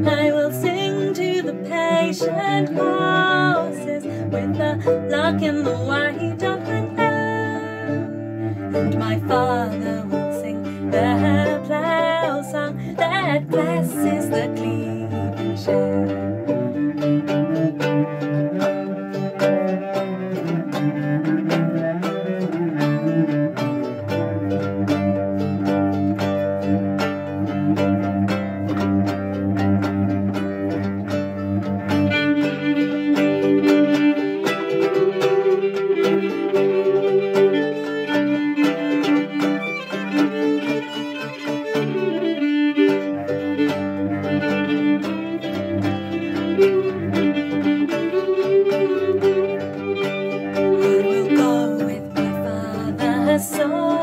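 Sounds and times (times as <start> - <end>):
bowed cello: 0.0 - 54.0
plucked string instrument: 0.0 - 54.0.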